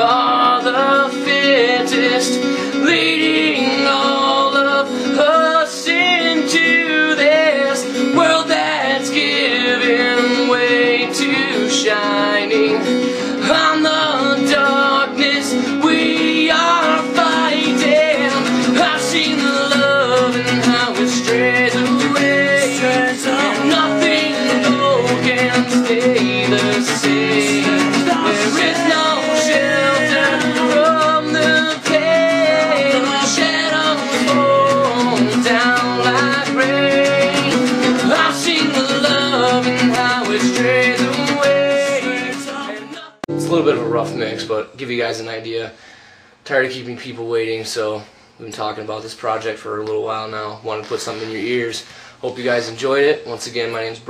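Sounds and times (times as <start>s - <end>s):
man singing: 0.0s - 45.0s
acoustic guitar strumming: 0.0s - 45.4s.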